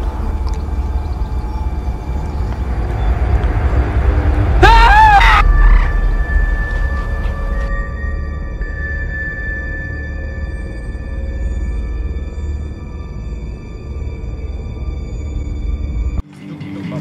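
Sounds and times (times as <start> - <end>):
low rumbling drone: 0.0 - 16.2
wavering cry-like swell: 0.8 - 15.8
sustained high ringing tones: 5.4 - 16.2.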